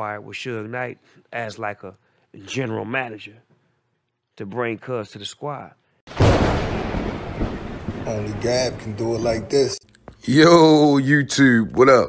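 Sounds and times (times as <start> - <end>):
thunder-like crash: 6.1 - 9.3.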